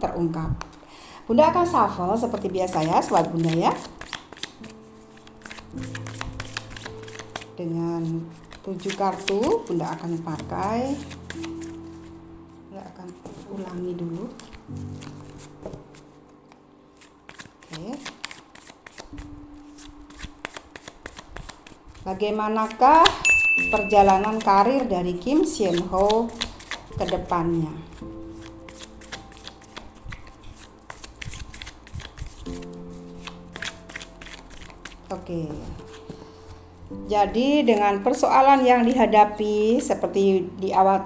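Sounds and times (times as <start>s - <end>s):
soft background music: 0.0s - 41.0s
cards being shuffled: 2.2s - 12.1s, 13.1s - 23.2s, 23.8s - 36.6s
low held tone: 23.2s - 24.2s.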